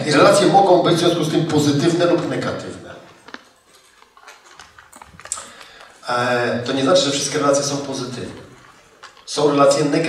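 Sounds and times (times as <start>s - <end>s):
small rustles: 3.0s - 9.8s.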